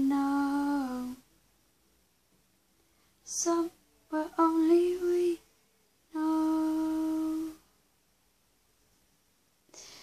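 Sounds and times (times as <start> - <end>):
woman singing held notes: 0.0 - 1.2, 3.2 - 7.7.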